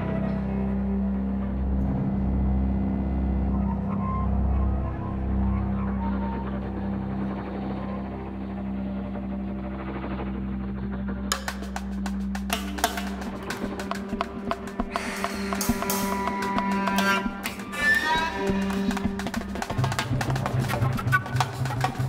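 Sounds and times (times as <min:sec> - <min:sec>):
low drone: 0:00.0 - 0:22.0.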